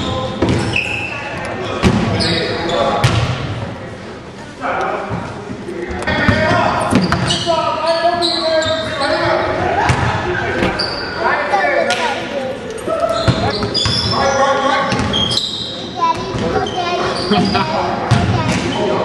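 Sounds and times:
people talking and calling out: 0.0s - 19.0s.

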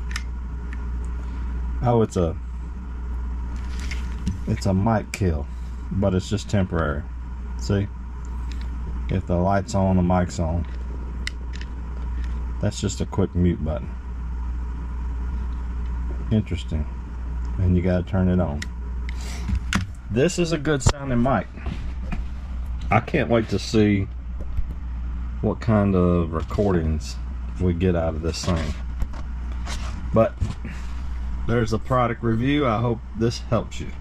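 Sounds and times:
low rumble: 0.0s - 34.0s
steady low hum: 0.0s - 34.0s.

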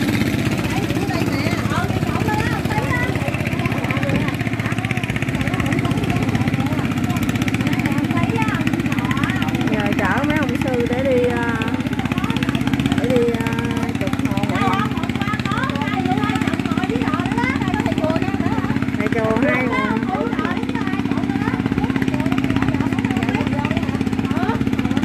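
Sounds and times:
indistinct voices talking: 0.0s - 25.0s
small engine running: 0.0s - 25.0s.

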